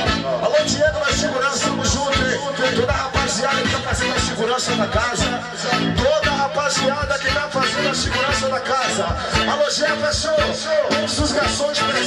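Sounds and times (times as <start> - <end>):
electric guitar: 0.0 - 12.0
live band music: 0.0 - 12.0.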